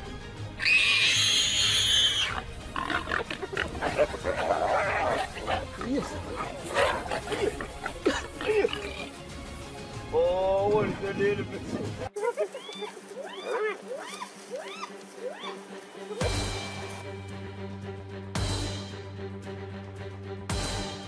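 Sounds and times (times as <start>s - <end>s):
warthog squealing and grunting: 0.6s - 9.2s.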